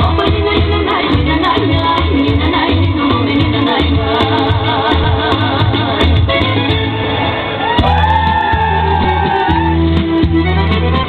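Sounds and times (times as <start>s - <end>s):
folk dance music: 0.0s - 11.0s.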